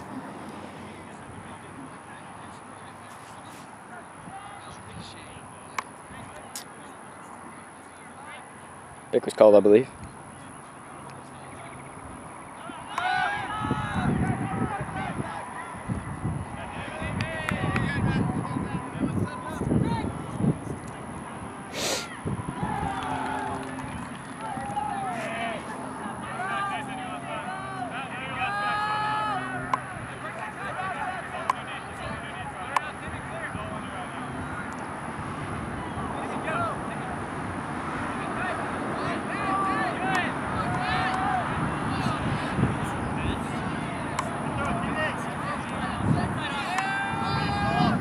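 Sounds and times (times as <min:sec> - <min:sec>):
outdoor background noise: 0:00.0 - 0:48.0
players shouting and calling: 0:00.0 - 0:48.0.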